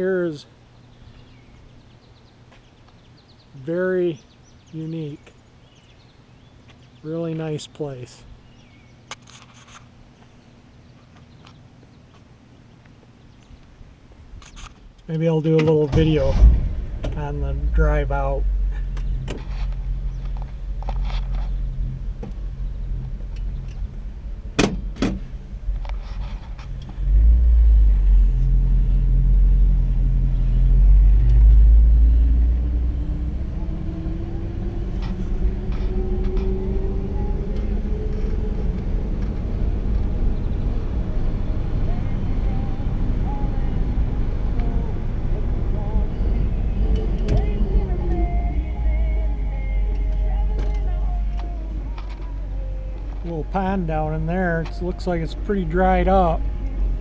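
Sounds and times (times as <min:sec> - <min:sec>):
tyre and road rumble: 0:13.0 - 0:57.0.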